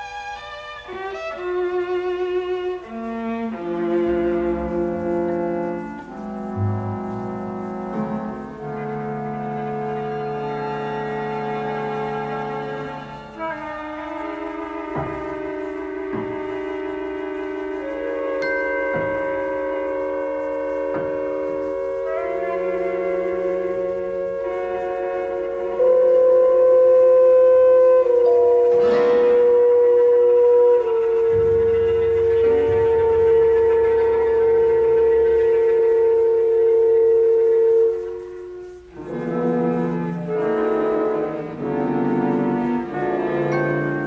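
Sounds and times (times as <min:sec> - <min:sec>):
chamber ensemble sustained chord: 0:02.8 - 0:44.0
low held tones: 0:12.9 - 0:44.0.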